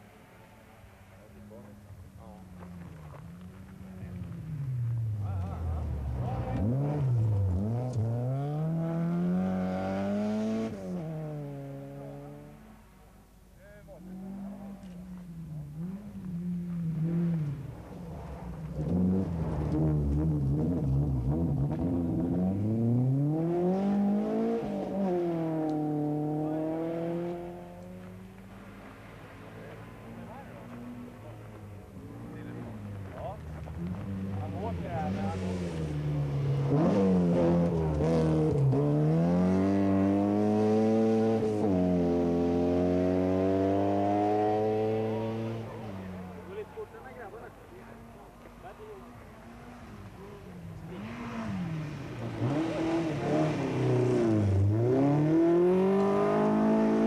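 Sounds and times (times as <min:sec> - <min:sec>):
rally car engines revving past: 0:00.0 - 0:57.0.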